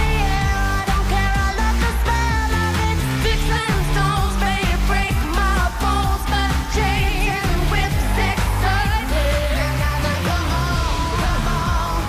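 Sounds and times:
electronic dance backing: 0.0s - 12.0s
woman singing pop song: 0.0s - 12.0s.

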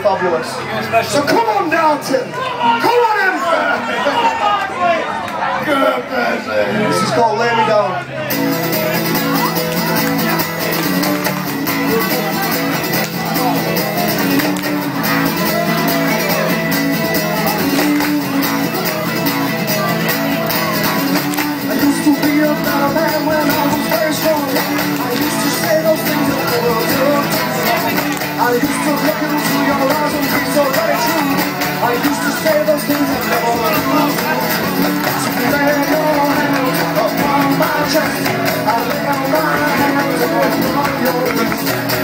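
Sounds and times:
strummed guitar: 8.0s - 42.0s
person singing: 13.2s - 42.0s.

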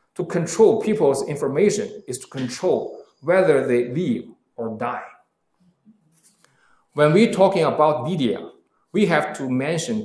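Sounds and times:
person speaking: 0.2s - 10.0s.

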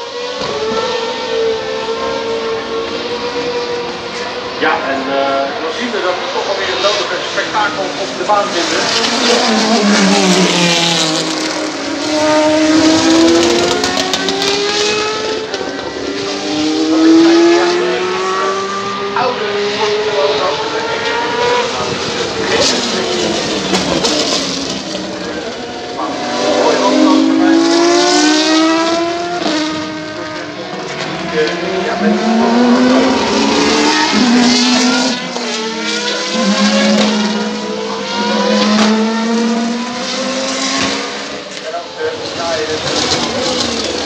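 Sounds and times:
race cars passing at speed: 0.0s - 44.0s.

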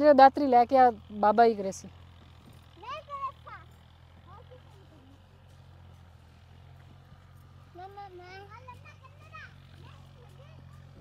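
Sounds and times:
tractor engine droning: 0.0s - 11.0s.

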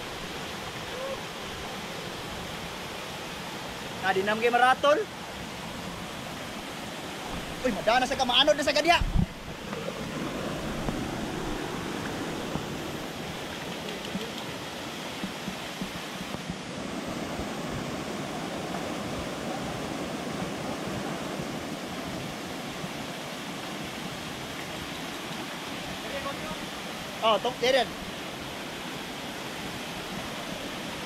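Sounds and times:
waterfall rushing over rocks: 0.0s - 31.0s.

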